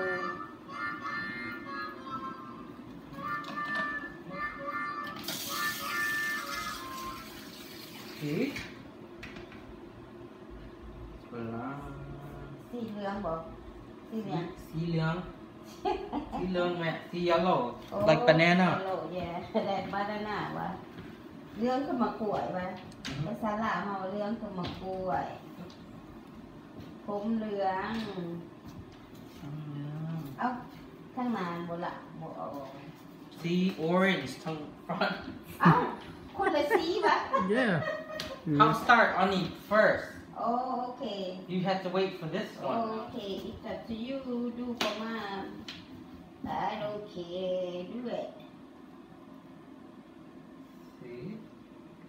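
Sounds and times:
water spraying from hose: 5.2s - 8.4s
person humming: 29.4s - 30.4s.

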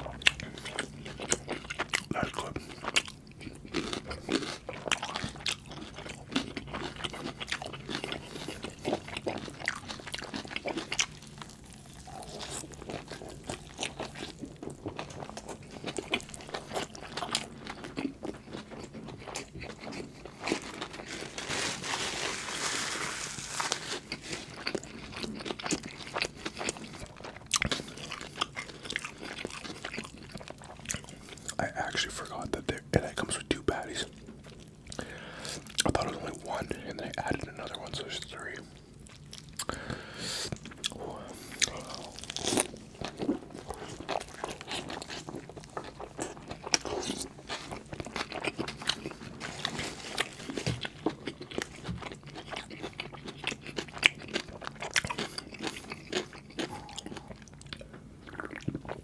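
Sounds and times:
biting chewing and crunching: 0.0s - 59.0s.

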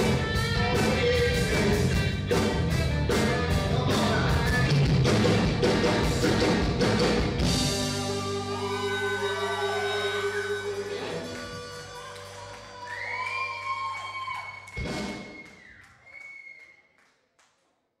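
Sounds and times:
rock band final chord ringing: 5.6s - 12.4s
sustained high tone: 8.0s - 12.0s.

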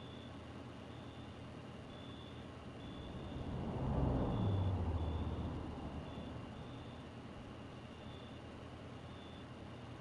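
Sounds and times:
vehicle engine passing by: 2.8s - 7.6s.

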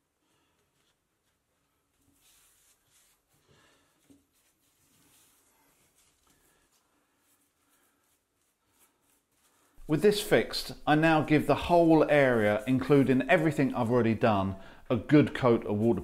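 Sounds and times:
paintbrush brushing and scratching: 0.0s - 14.6s.

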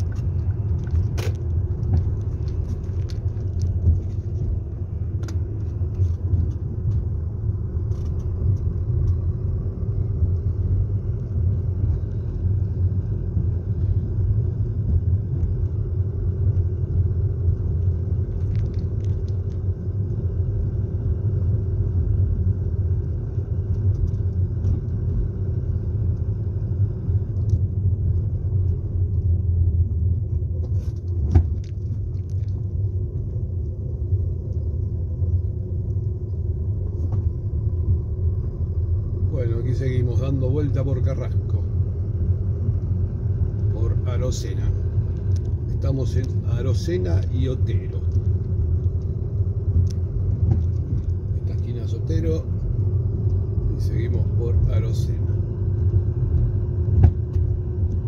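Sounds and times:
car engine and road noise: 0.0s - 58.0s.

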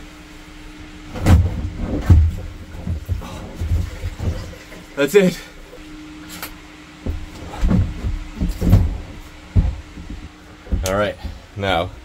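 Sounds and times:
plastic tank knocking and scraping: 1.1s - 4.7s, 7.0s - 11.5s.

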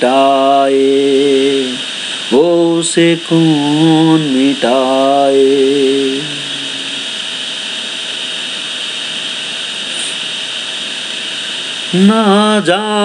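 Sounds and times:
man singing: 0.0s - 6.9s, 11.9s - 13.0s
steady background hiss: 0.0s - 13.0s.

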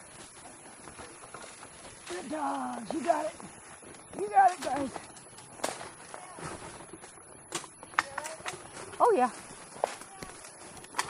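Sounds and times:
wheeled rig rattling on dirt: 0.0s - 11.0s.

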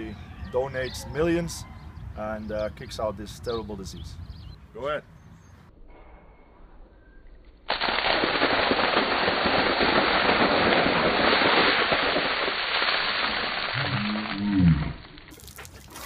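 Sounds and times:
water pouring and splashing: 7.7s - 16.0s.

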